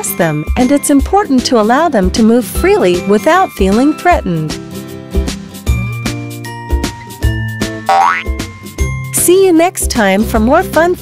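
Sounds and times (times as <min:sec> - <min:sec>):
upbeat children's music: 0:00.0 - 0:11.0
cartoon boing sound effect: 0:07.9 - 0:08.4.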